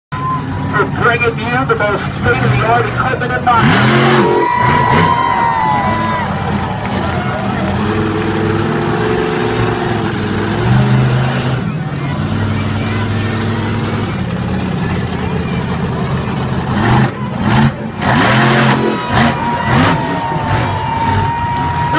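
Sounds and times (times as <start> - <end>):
monster truck engine revving: 0.2 - 21.9.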